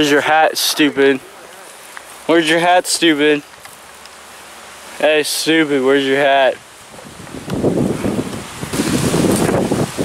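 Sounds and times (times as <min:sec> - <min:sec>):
wind buffeting microphone: 0:06.6 - 0:10.0.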